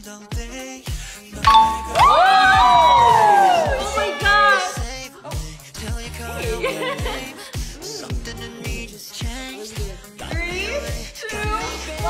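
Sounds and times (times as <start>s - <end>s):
background music with drum beat: 0.0s - 12.0s
two-tone ding-dong chime: 1.5s - 2.3s.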